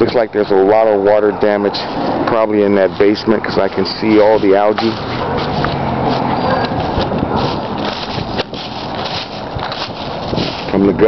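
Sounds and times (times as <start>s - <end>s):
steady background noise: 0.0s - 11.0s
footsteps on leaf litter: 1.4s - 11.0s.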